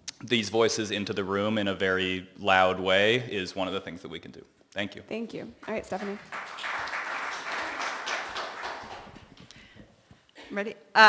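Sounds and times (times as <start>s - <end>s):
audience applauding: 5.6s - 9.6s.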